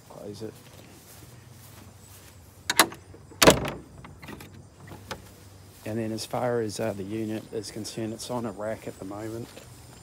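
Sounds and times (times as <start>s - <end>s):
wooden gate knock: 2.7s - 5.2s
wooden gate banging shut: 2.7s - 5.3s.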